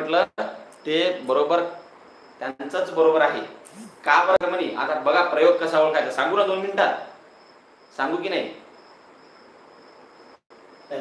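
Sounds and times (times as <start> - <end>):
man speaking: 2.4 - 7.0.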